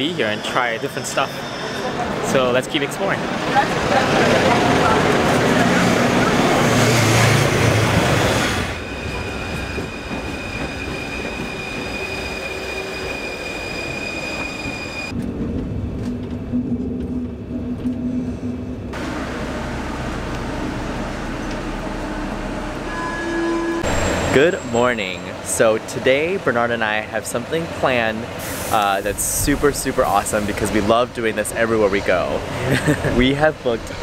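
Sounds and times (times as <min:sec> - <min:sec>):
metro train rumbling: 0:00.0 - 0:34.0
train high whine: 0:00.0 - 0:34.0
low hum: 0:15.1 - 0:24.8.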